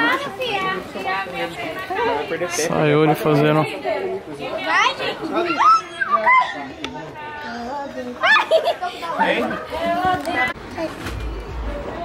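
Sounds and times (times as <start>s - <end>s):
children chattering and laughing: 0.0s - 12.0s.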